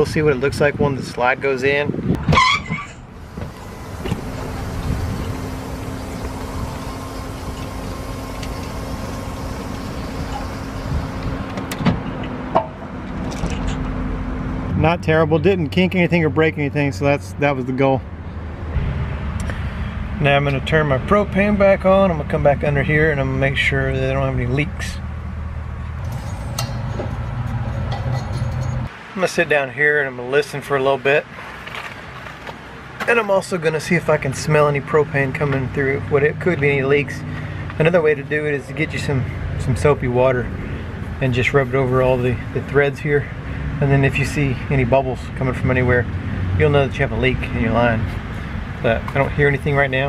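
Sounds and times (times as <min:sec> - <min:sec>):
electric motor hum: 0:03.2 - 0:11.7.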